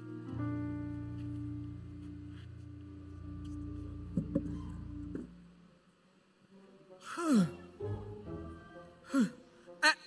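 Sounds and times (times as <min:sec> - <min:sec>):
person sighing: 0:07.0 - 0:07.6, 0:09.1 - 0:09.4.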